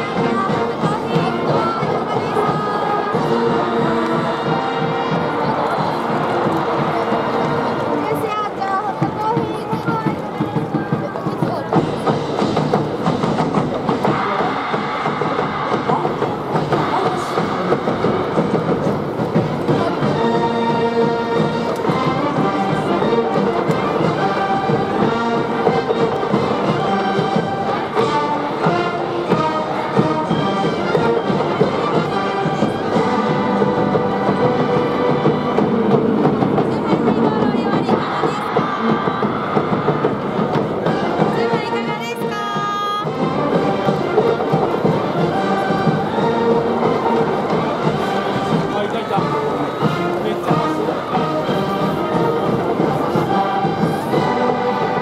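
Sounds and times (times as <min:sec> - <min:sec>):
brass band playing: 0:00.0 - 0:09.4, 0:11.7 - 0:55.0
sustained horn melody: 0:40.4 - 0:55.0.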